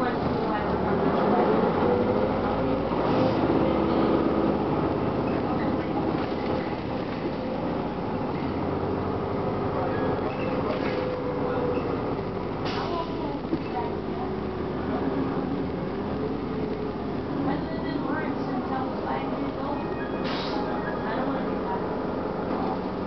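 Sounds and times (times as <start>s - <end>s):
bus diesel engine running: 0.0s - 23.0s
road noise: 0.0s - 23.0s.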